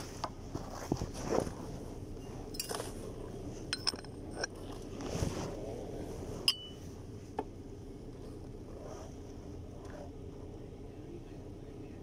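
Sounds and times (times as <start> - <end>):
metal tools clinking: 2.5 - 3.0, 3.7 - 4.7.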